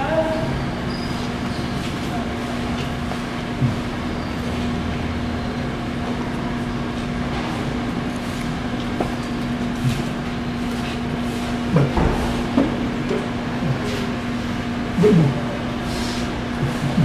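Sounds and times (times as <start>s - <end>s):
mechanical hum: 0.0s - 17.0s.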